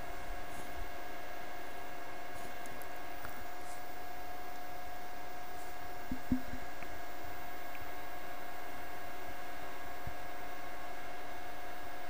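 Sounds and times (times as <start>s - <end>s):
faint hum tones: 0.0s - 12.0s
steady background hiss: 0.0s - 12.0s
soft low thumps: 6.1s - 6.7s.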